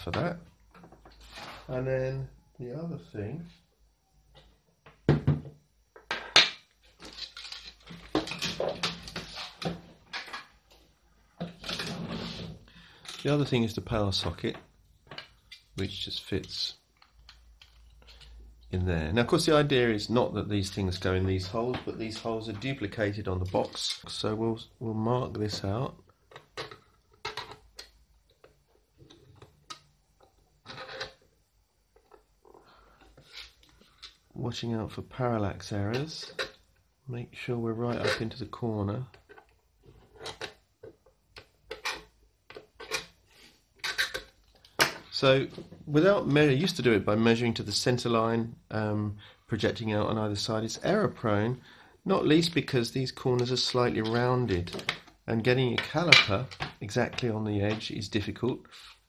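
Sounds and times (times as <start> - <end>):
plastic scraping and rubbing: 11.5 - 12.6.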